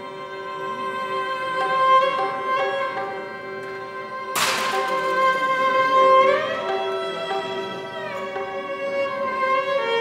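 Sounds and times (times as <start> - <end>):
sudden sharp crack: 4.4 - 5.5.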